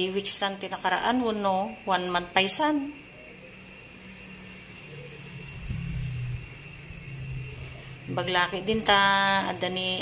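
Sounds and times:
vehicle engine humming: 0:03.2 - 0:10.0.

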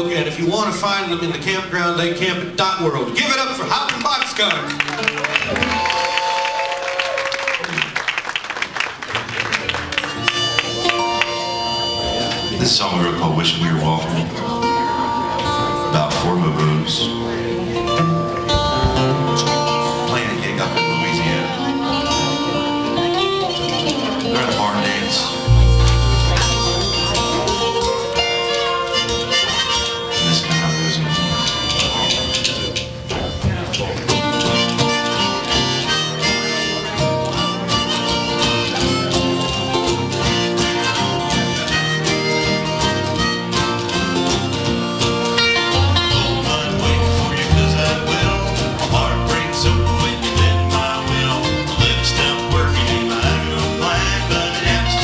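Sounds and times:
folk string band playing: 0:10.0 - 0:55.0
harmonica lead: 0:10.1 - 0:13.0, 0:25.1 - 0:55.0
pulsing bass line: 0:25.5 - 0:27.9
deep bass note: 0:25.5 - 0:28.0.

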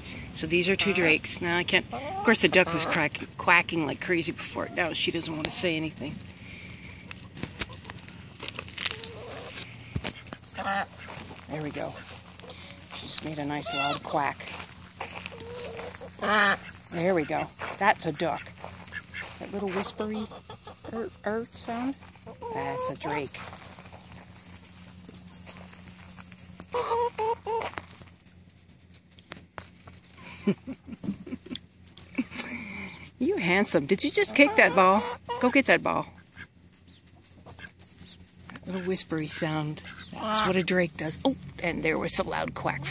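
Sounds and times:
steady low hum: 0:00.0 - 0:42.9
poultry calling: 0:00.5 - 0:03.3, 0:08.8 - 0:24.5, 0:26.6 - 0:28.0, 0:33.6 - 0:41.2
duck quacking: 0:01.9 - 0:03.2, 0:09.2 - 0:12.8, 0:15.1 - 0:21.4, 0:26.7 - 0:27.7, 0:34.2 - 0:35.6, 0:39.8 - 0:40.7.

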